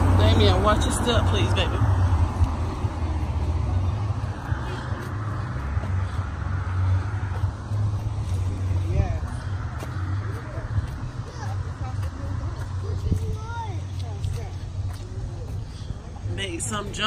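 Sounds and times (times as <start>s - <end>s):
faint voices: 0.0s - 17.0s
road traffic: 0.0s - 17.0s
wind buffeting microphone: 0.0s - 17.0s.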